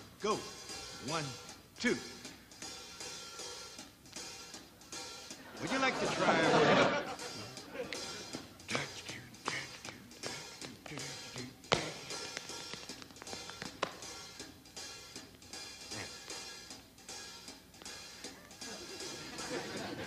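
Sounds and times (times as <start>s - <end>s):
band music with soft drums: 0.0s - 20.0s
dance shoes tapping on stage: 9.5s - 14.2s.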